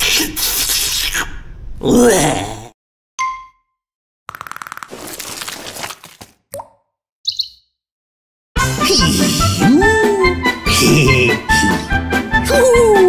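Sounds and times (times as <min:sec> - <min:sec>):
short chirps: 0:07.3 - 0:07.7
cheerful music: 0:08.6 - 0:13.0.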